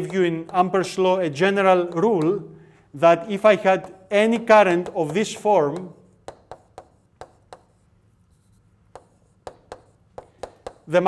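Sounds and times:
chalk tapping on blackboard: 0.0 - 2.5, 3.2 - 11.0.

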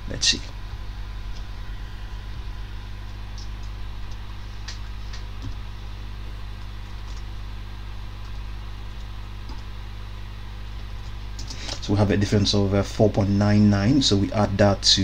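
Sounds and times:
low electrical hum: 0.0 - 15.0.

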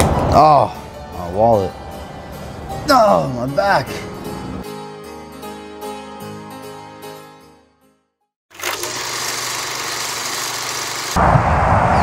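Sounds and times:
low rumble: 11.2 - 12.0.

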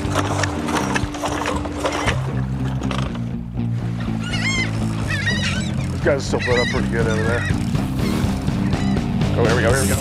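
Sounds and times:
background music with low notes: 0.0 - 10.0
gull calling: 3.9 - 9.6.

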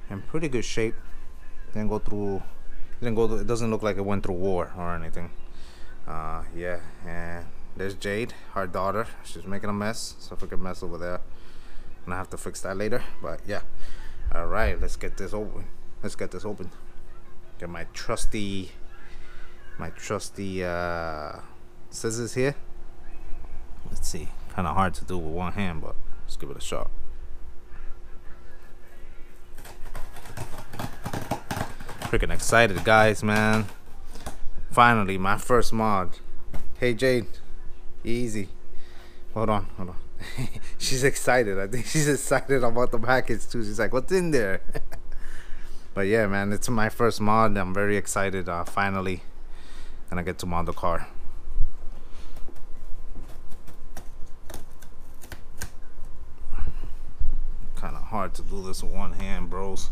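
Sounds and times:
faint steady hum: 0.0 - 59.9.

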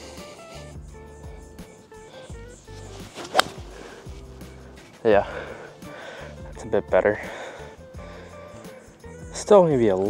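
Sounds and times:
background music with bass line: 0.0 - 10.0
golf club striking ball: 2.6 - 4.6.

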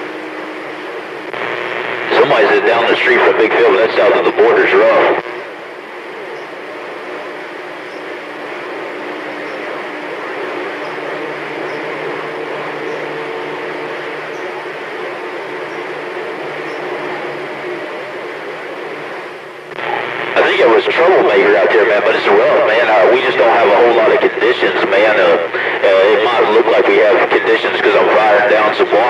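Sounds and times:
faint steady tones: 0.0 - 29.0
radio static hiss: 0.0 - 29.0.

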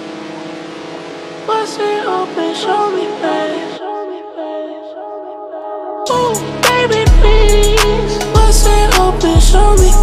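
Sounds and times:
held synth chord: 0.0 - 10.0
man singing: 1.5 - 10.0.

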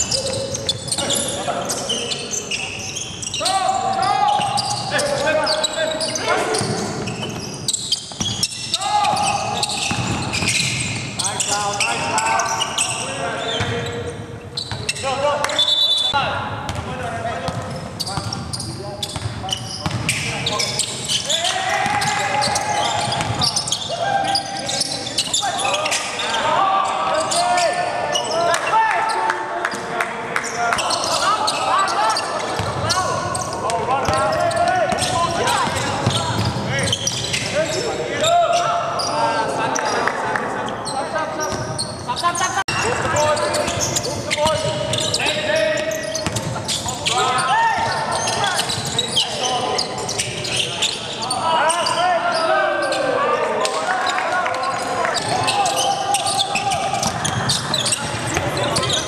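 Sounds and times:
players calling out: 0.0 - 59.0
sneakers squeaking: 0.0 - 59.0
basketball bouncing: 9.8 - 10.7, 23.1 - 23.4, 34.0 - 36.7.

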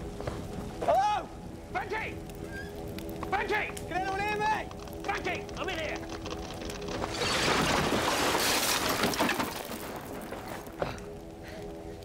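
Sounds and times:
crackling fire: 0.0 - 12.0
dramatic background music: 0.0 - 12.0
falling debris: 4.7 - 11.2.

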